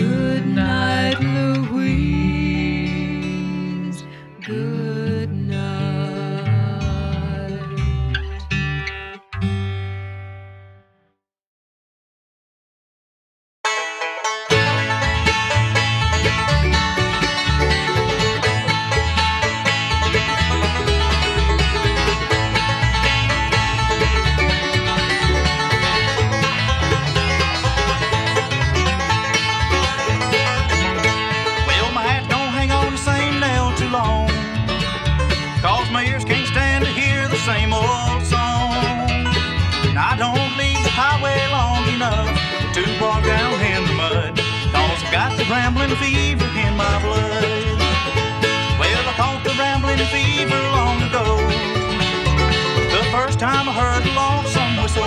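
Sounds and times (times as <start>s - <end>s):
bluegrass band playing: 0.0s - 8.8s, 13.7s - 55.0s
banjo: 0.0s - 9.6s, 13.6s - 55.0s
wavering lead melody: 13.7s - 55.0s.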